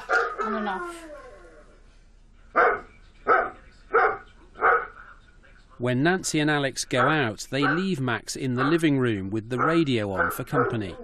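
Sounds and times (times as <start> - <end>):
dog barking: 0.0 - 0.7, 2.6 - 5.0, 7.0 - 7.9, 8.6 - 8.9, 9.6 - 11.0.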